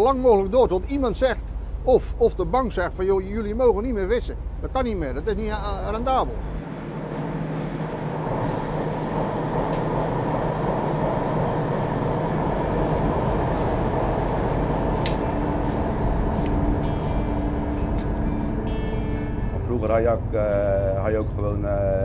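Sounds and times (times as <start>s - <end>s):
boat engine drone: 0.0s - 22.0s.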